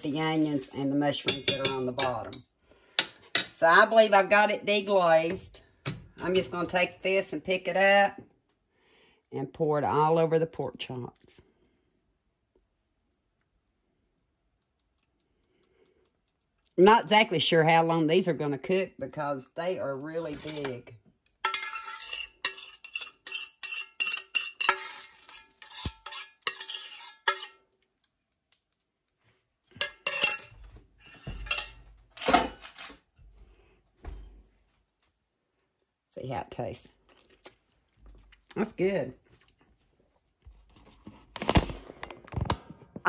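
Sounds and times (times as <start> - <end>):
metal utensil scraping skillet: 0.0 - 3.6, 20.2 - 27.7, 29.7 - 32.9.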